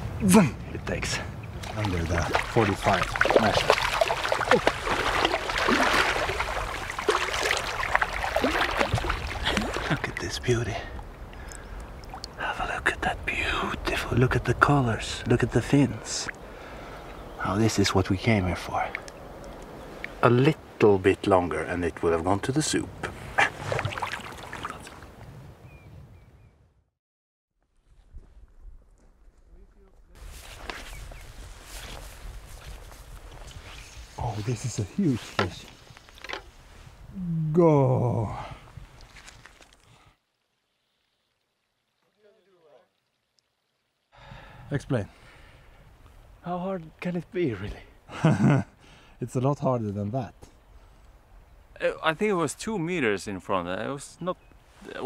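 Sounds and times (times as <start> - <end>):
outdoor lakeshore background: 0.0 - 26.9, 27.5 - 55.0
water splashing around boat: 1.4 - 12.4, 23.0 - 25.2
footsteps on gravel and grass: 2.0 - 9.9
knocks and handling noise: 35.2 - 36.5.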